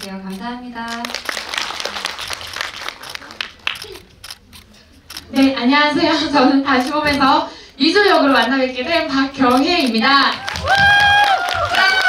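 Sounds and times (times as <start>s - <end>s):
audience applauding: 0.9s - 3.9s, 10.4s - 12.0s.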